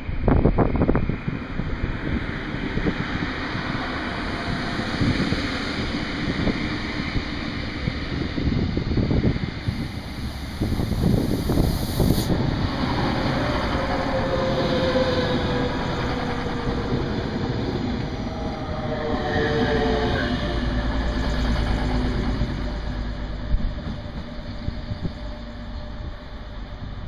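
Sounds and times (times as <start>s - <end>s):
train engine and wheel rumble: 0.0s - 27.0s.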